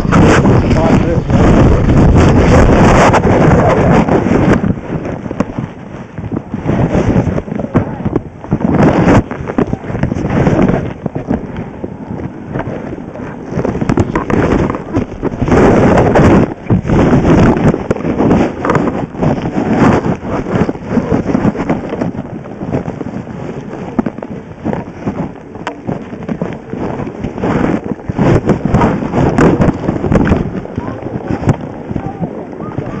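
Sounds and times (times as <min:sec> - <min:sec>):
crackling scraping over snow: 0:00.0 - 0:33.0
wind buffeting microphone: 0:00.0 - 0:33.0.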